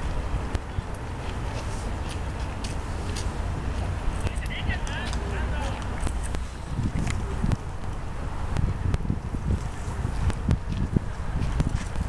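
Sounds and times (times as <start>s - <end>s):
people talking: 4.2s - 5.9s.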